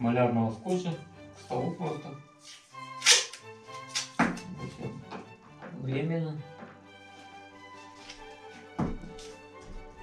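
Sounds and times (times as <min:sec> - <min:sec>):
background music: 0:00.0 - 0:10.0
masking tape ripping: 0:02.4 - 0:04.5.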